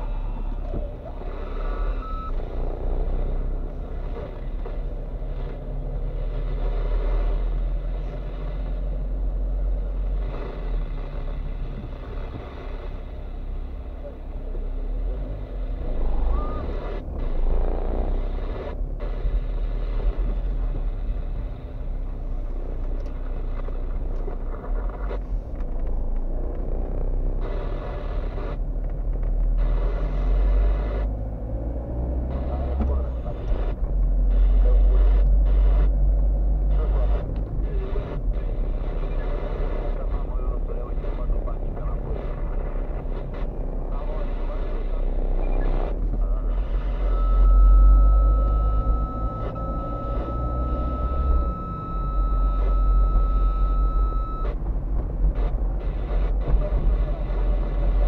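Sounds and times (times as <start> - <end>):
car engine and road rumble: 0.0 - 58.0
speech: 32.3 - 35.6, 36.6 - 46.8.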